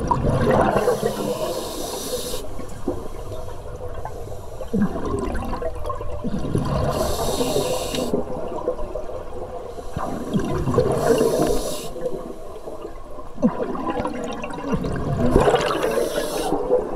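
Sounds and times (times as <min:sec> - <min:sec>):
gurgling exhale bubbles: 0:00.0 - 0:12.3, 0:13.4 - 0:16.9
hissing regulator inhale: 0:00.7 - 0:04.8, 0:06.9 - 0:08.2, 0:09.8 - 0:12.5, 0:15.7 - 0:16.7.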